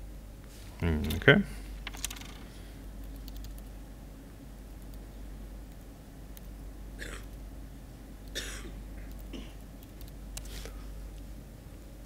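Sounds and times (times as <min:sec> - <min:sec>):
soft laptop keystrokes: 0:03.0 - 0:03.7.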